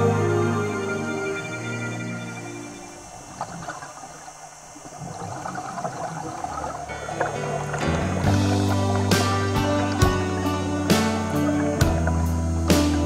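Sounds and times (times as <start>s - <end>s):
background music: 0.0s - 3.1s, 6.7s - 13.0s.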